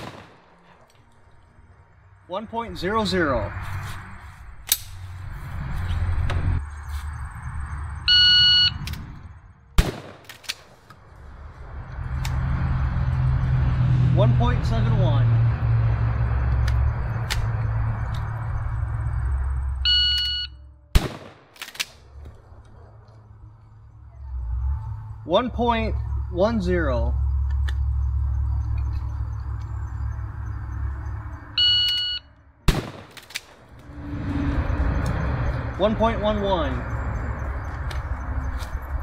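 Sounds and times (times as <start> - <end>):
shotgun firing: 0.0 - 0.6, 9.8 - 10.4, 21.0 - 21.6, 32.7 - 33.2
low rushing noise: 0.0 - 39.0.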